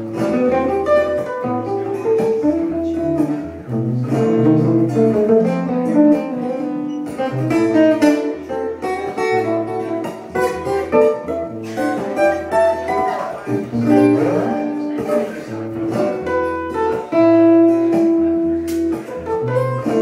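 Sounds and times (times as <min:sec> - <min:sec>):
acoustic guitar with delay: 0:00.0 - 0:20.0.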